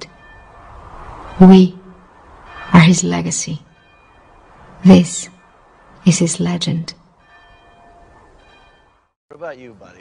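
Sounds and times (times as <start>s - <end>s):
church bell tolling faintly: 0.0s - 9.2s.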